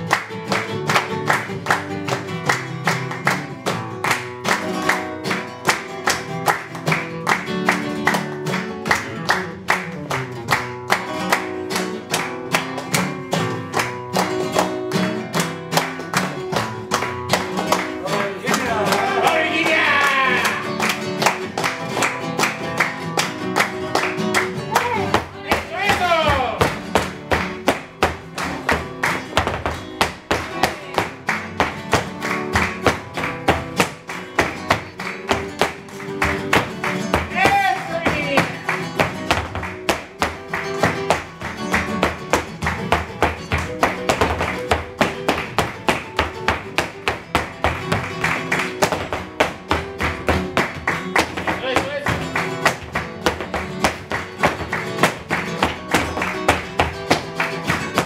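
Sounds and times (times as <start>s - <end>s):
flamenco guitar playing: 0.0s - 58.0s
rhythmic hand clapping: 0.0s - 58.0s
person calling out: 18.6s - 20.7s, 24.7s - 26.6s, 37.3s - 38.6s.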